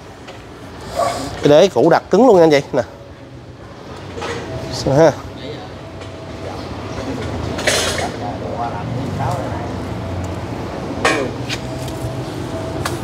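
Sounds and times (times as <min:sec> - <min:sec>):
steady low hum: 0:02.0 - 0:13.0.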